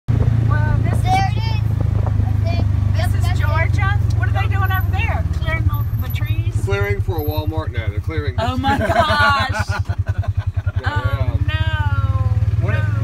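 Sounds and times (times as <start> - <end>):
vehicle engine droning: 0.1 - 13.0
voices talking: 0.5 - 13.0.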